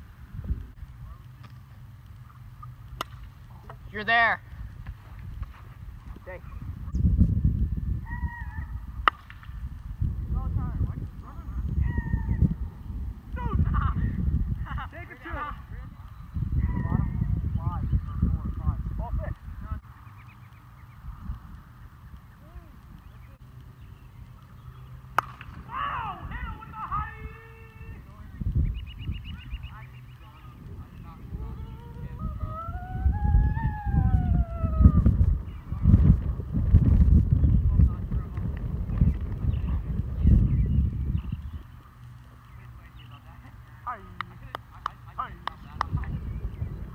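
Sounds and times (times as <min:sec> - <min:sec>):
plastic bat hitting ball: 0:09.0 - 0:09.6, 0:25.1 - 0:25.7
players shouting and whooping: 0:13.3 - 0:15.7, 0:25.6 - 0:28.0, 0:31.2 - 0:35.2
voices calling out: 0:21.7 - 0:35.9, 0:39.0 - 0:46.9
long yell: 0:25.7 - 0:28.0, 0:31.3 - 0:35.1.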